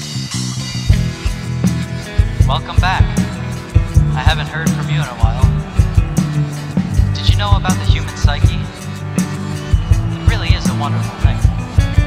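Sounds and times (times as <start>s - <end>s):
bass: 0.0s - 12.0s
drums steady beat: 0.0s - 12.0s
progressive rock music: 0.0s - 12.0s.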